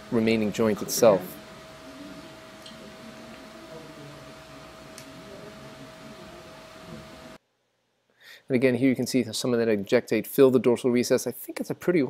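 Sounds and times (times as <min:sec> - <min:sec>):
steady hiss: 0:00.0 - 0:07.4
faint steady whine: 0:00.0 - 0:12.0.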